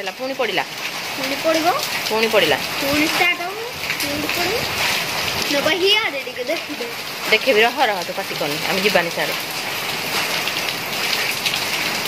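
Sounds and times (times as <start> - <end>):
heavy rain on tiled paving: 0.0 - 12.0
hailstones falling: 0.8 - 12.0.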